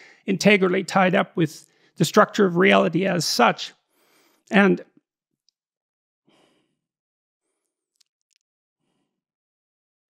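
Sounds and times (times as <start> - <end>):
man's faint breath: 3.9 - 4.5.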